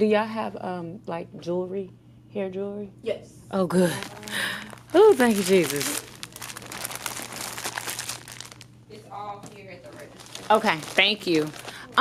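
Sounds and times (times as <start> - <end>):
plastic wrapping crinkling: 3.8 - 8.8, 9.5 - 12.0.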